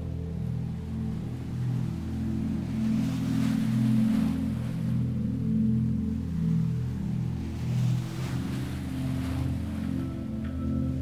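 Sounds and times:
ambient drone chords: 0.0s - 11.0s.

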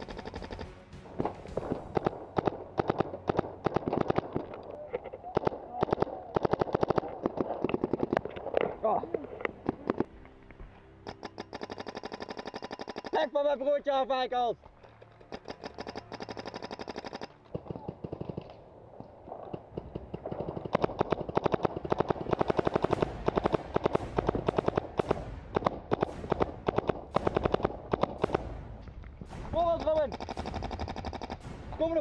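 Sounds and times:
paintball markers firing: 0.0s - 8.7s, 11.1s - 13.3s, 14.9s - 18.6s, 19.3s - 31.5s.

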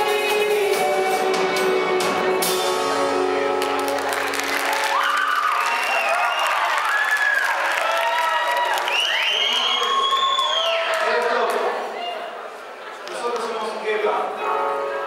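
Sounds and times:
audience applause: 3.6s - 11.9s.

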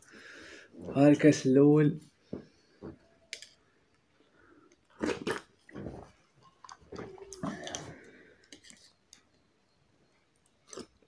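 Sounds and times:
wet eating mouth sounds: 4.8s - 8.9s.

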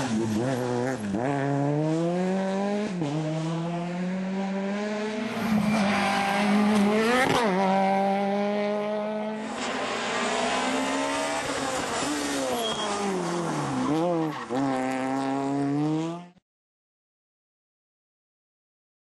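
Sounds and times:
rally car engine revving hard: 0.0s - 16.4s.

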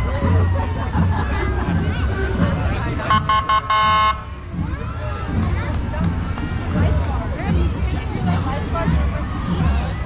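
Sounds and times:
spectators' voices: 0.0s - 10.0s
vehicle horn honking: 3.1s - 4.2s.

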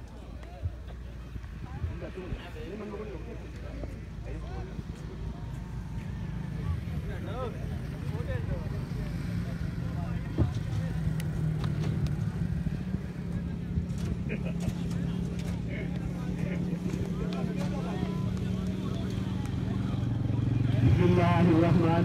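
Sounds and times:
faint distant voices: 0.0s - 22.0s.

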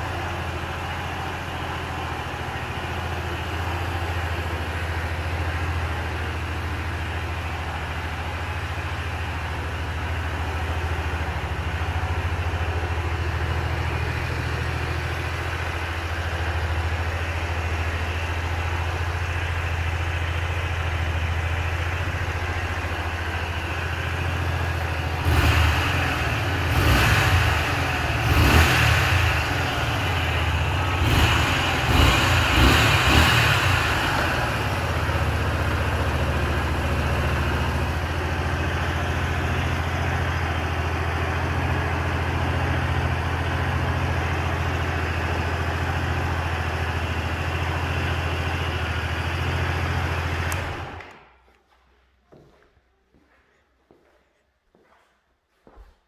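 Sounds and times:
motorcycle engine idling: 0.0s - 51.0s
motorcycle engine revving: 0.0s - 51.2s.

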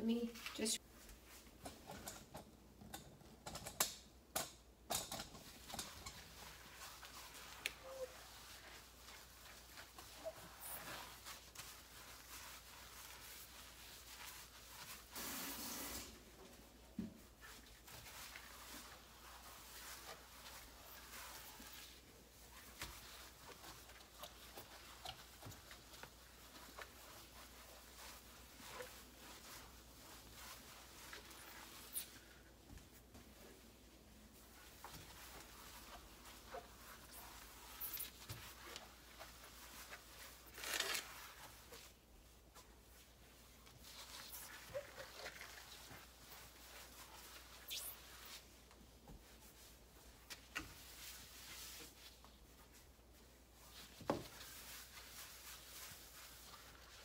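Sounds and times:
sponge wiping a stovetop: 5.4s - 57.0s.

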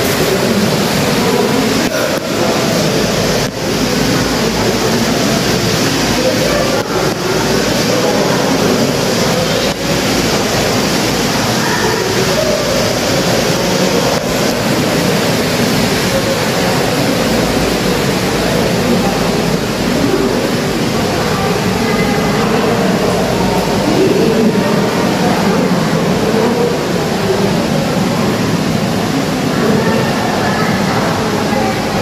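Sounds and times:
loud rushing noise: 0.0s - 32.0s.

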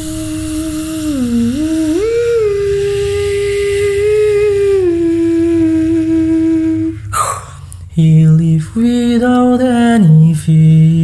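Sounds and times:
person humming held note: 0.0s - 7.7s
low buzzing bass drone: 0.0s - 11.0s.

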